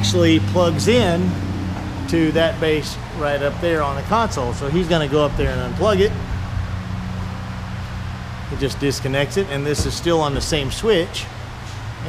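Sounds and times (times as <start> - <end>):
low mechanical hum with hiss: 0.2 - 12.0.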